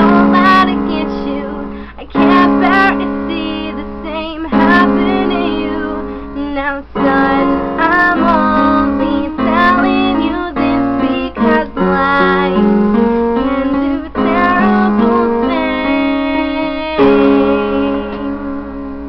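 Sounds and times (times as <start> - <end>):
woman singing: 0.0 - 18.6
piano playing chords: 0.0 - 19.0.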